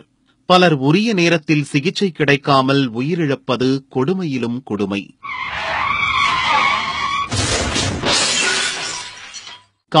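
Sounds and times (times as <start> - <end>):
tyres skidding squeal: 5.2 - 7.3
loud crash: 6.0 - 9.6.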